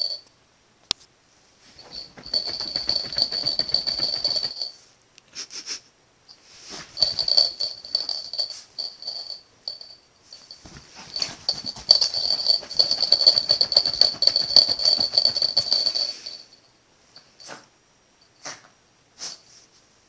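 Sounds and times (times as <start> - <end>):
small collar bell jingling: 0.0 - 0.2, 1.8 - 4.8, 7.0 - 17.6
dog claws scratching fabric: 10.6 - 16.2.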